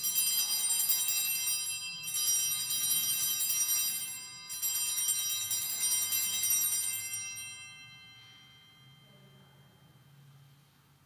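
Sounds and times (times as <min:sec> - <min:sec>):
altar bells jingling: 0:00.0 - 0:10.0.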